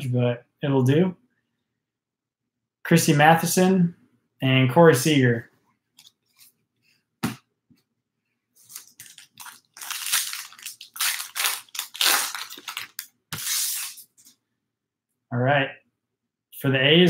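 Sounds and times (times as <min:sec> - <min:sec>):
foil wrapper tearing and crinkling: 0:08.7 - 0:14.0.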